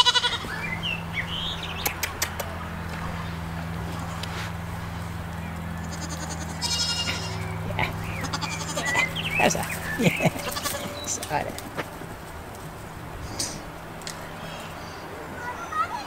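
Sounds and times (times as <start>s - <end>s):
young goats bleating: 0.0s - 1.2s, 3.2s - 11.6s
steady low hum: 0.0s - 15.1s.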